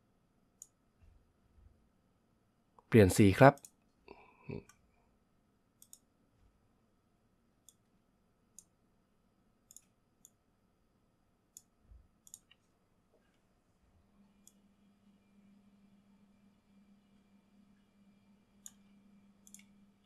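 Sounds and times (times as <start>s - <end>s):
computer mouse clicks: 5.8s - 6.1s, 7.6s - 7.9s, 9.7s - 10.4s, 11.5s - 12.6s, 18.6s - 19.8s.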